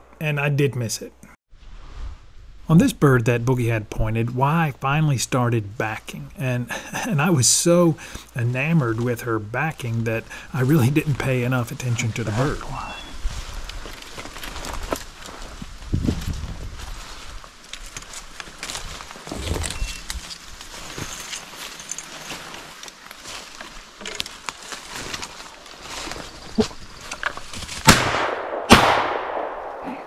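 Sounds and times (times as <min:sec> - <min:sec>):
brush rustling: 0:01.5 - 0:27.9
footsteps through saplings: 0:09.9 - 0:27.9
shotgun shots: 0:27.8 - 0:29.9.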